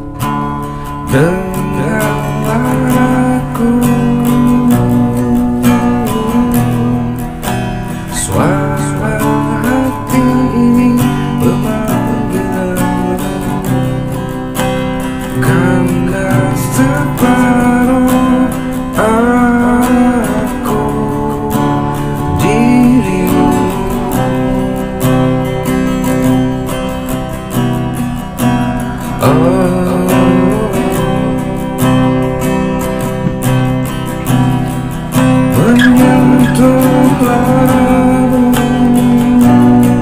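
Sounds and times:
strummed acoustic guitar: 0.0s - 40.0s
man singing: 1.1s - 14.3s, 15.2s - 26.5s, 29.0s - 32.4s, 34.3s - 40.0s.

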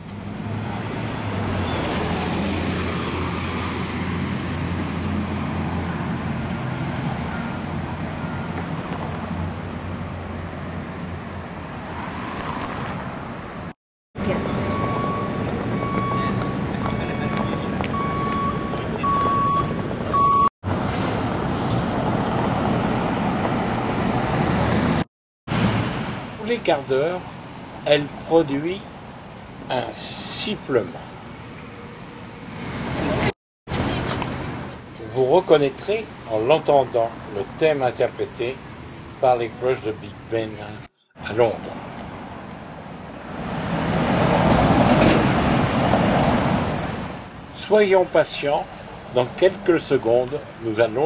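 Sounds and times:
traffic: 0.0s - 51.0s
high electronic beeps: 14.4s - 20.5s.

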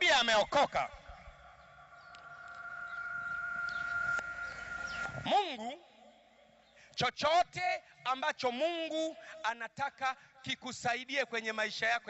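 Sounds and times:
steady high-pitched tone: 0.2s - 6.5s
person speaking: 5.2s - 5.9s.

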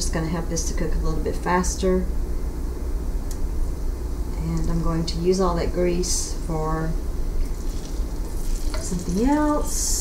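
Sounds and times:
bacon sizzling in grease: 7.4s - 9.6s.

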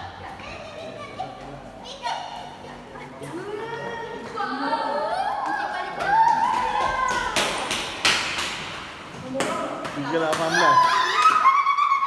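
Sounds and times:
children chattering and playing: 0.0s - 8.0s.

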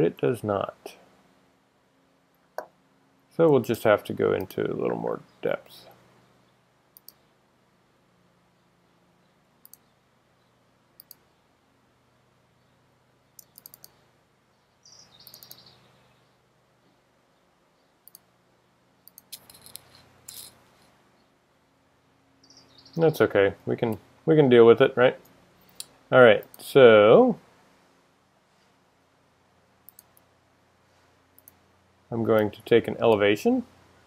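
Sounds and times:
computer mouse clicks: 7.0s - 7.2s, 9.6s - 9.9s, 11.0s - 11.2s, 13.4s - 14.0s, 15.2s - 15.7s, 18.0s - 18.3s, 19.0s - 20.5s, 29.8s - 30.3s, 31.4s - 31.6s.

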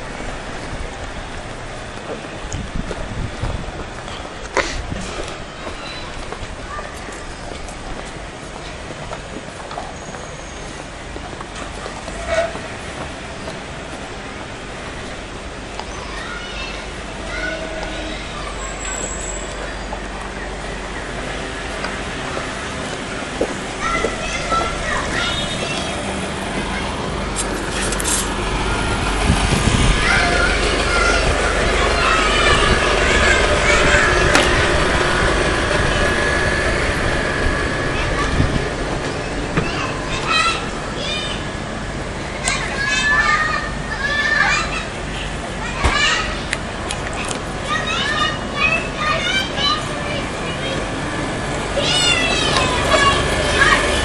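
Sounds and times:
children calling and shouting: 0.0s - 54.0s
distant voices: 0.0s - 54.0s.

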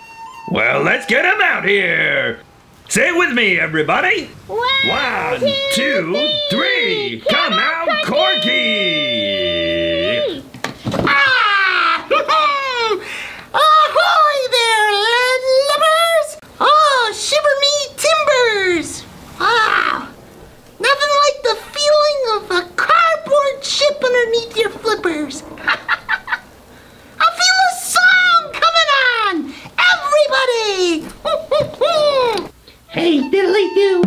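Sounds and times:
squeaky cartoon voice crying out: 31.3s - 34.0s.

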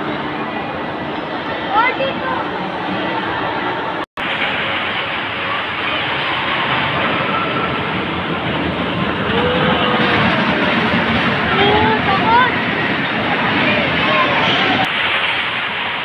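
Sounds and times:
roller coaster wheels rumbling on rail: 0.0s - 16.0s.

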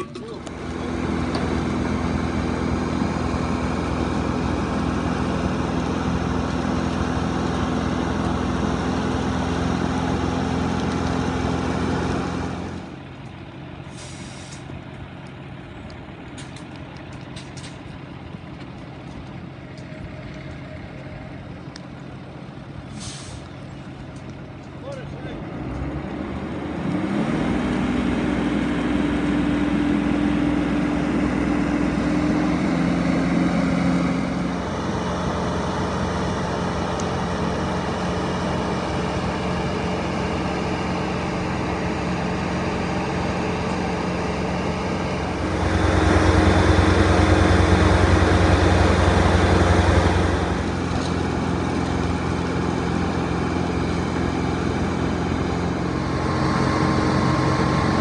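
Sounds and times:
truck engine driving water pump: 0.0s - 58.0s.

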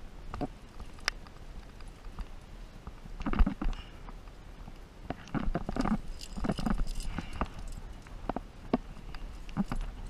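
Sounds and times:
climbing gear rattling on rock: 5.2s - 10.0s.

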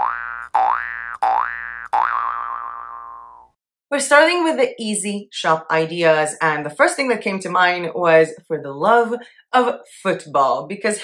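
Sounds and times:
cartoon boing sound effect: 0.0s - 3.6s.

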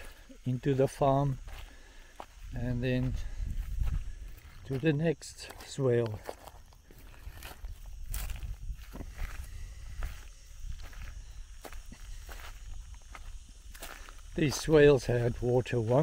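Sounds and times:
footsteps on dry grass: 0.0s - 16.0s.

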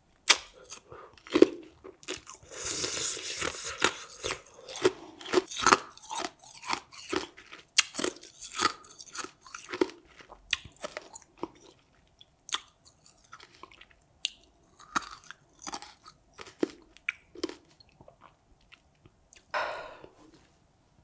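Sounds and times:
person chewing food: 0.2s - 20.4s.

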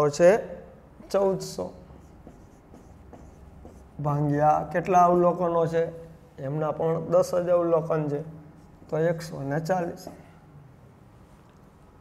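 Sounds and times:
marker writing on whiteboard: 1.0s - 4.7s, 8.5s - 10.4s.

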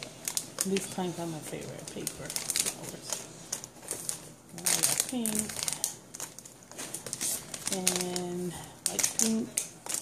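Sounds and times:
cellophane wrapping crinkling: 0.0s - 10.0s.

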